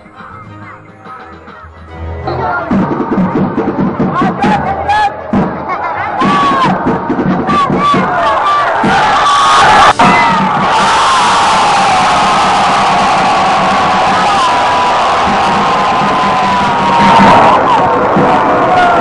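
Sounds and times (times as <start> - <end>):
crowd cheering and shouting: 2.0 - 19.0.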